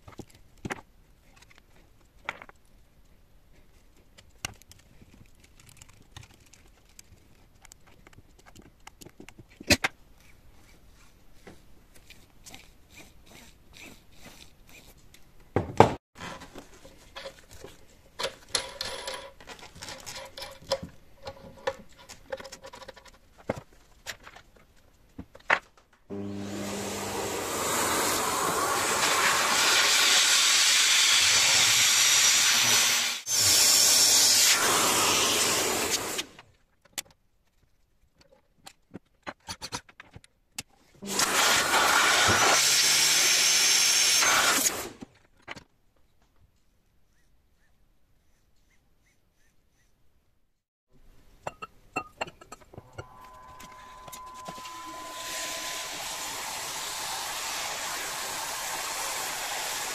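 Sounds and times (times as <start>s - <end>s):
electric tool motor running: 26.1s - 36.2s, 53.2s - 59.9s.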